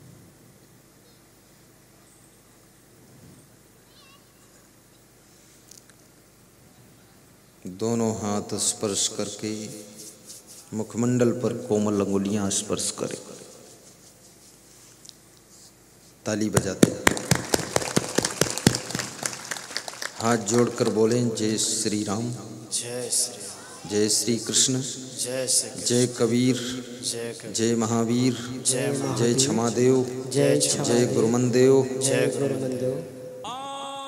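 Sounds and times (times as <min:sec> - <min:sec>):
audience clapping: 0:16.6 - 0:22.0.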